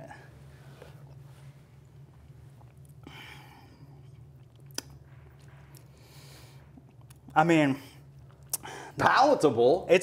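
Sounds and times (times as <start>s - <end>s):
low steady hum: 0.0s - 10.0s
faint chewing: 0.8s - 7.4s, 8.0s - 8.7s.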